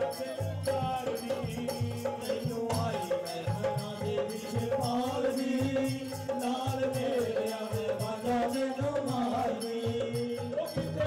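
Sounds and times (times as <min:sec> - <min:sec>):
hand drum beat: 0:00.0 - 0:11.0.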